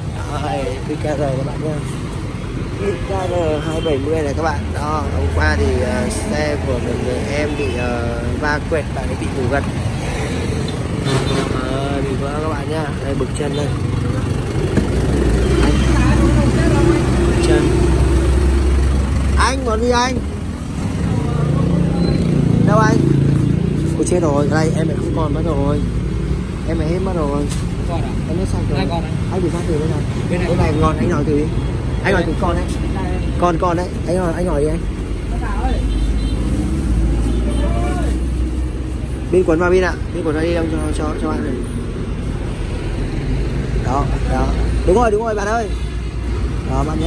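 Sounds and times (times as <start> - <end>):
low rumble of traffic: 0.0 - 47.0
diesel truck engine idling: 11.7 - 21.9.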